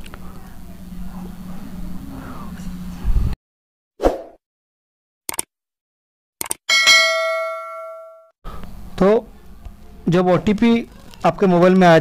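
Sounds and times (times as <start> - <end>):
notification bell ding: 6.7 - 8.3.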